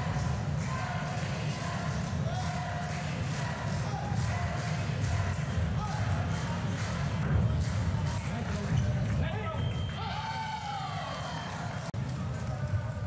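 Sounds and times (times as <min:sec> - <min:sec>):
crowd voices: 0:00.0 - 0:13.0
low rumble of hall: 0:00.0 - 0:13.0.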